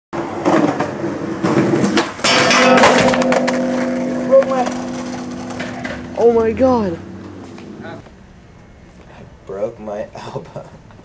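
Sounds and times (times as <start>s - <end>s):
skateboard rolling: 0.2s - 2.3s
skateboard crash on metal handrail: 0.4s - 6.3s.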